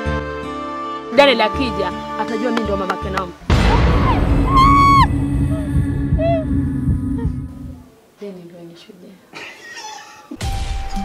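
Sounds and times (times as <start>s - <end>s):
dramatic soundtrack rumble: 3.4s - 7.8s
woman crying out: 4.0s - 5.1s.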